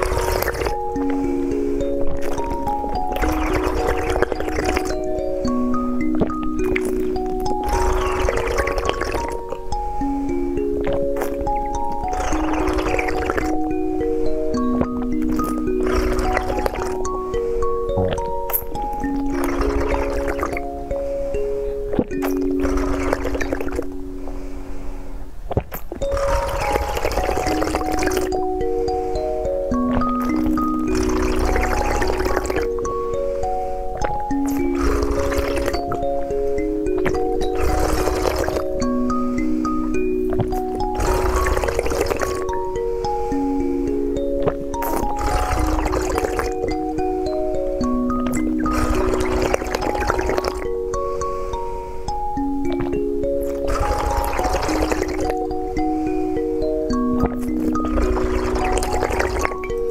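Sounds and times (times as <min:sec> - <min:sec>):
slurping and sipping: 0:00.0 - 0:24.1, 0:25.5 - 0:59.9
water with beads pouring and gulping: 0:00.0 - 0:24.2, 0:25.5 - 0:59.9
bell-like background music: 0:00.0 - 0:25.1, 0:26.0 - 0:59.9.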